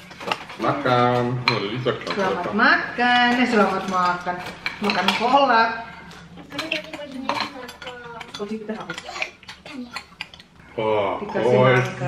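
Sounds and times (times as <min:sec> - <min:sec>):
spoons clinking on ceramic bowls: 0:03.1 - 0:05.4, 0:06.5 - 0:10.5.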